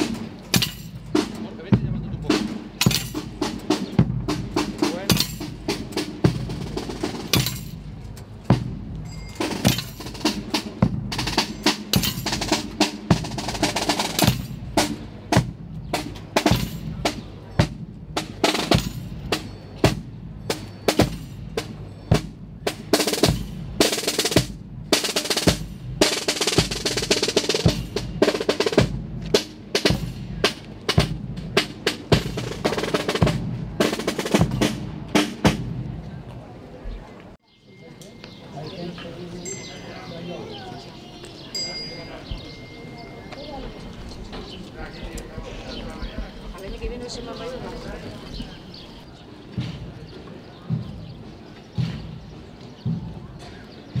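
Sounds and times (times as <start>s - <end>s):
bass drum beating: 49.5s - 54.0s.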